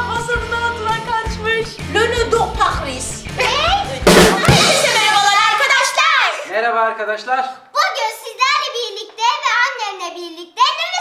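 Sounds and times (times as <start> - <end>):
upbeat drum-kit music: 0.0 - 5.7
voices: 0.0 - 6.5
loud drum hit: 3.9 - 5.4.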